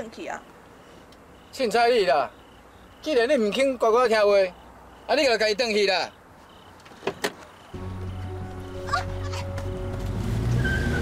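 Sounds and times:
low background music: 7.8s - 11.0s.

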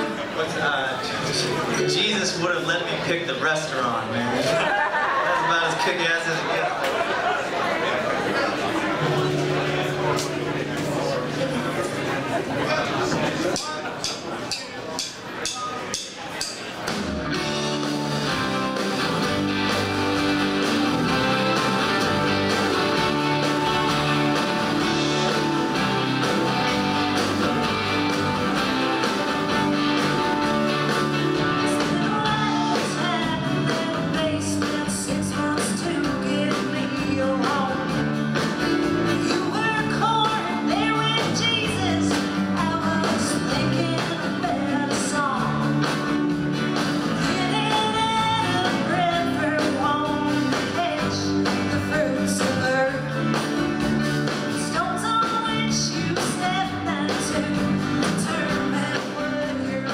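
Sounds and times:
live roots-rock band playing: 0.0s - 59.9s
woman singing lead vocal: 31.6s - 38.0s, 39.1s - 45.8s, 47.2s - 53.4s, 54.5s - 59.9s.

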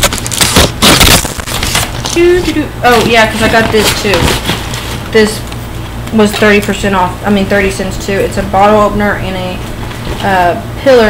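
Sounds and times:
shopping bag crinkling and rustling: 0.0s - 5.0s.

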